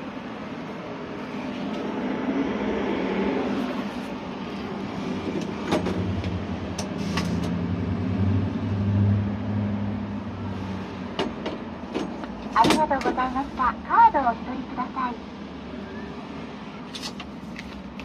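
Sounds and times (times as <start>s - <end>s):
heavy vehicle engine drone: 0.0s - 18.0s
road traffic: 0.0s - 18.0s.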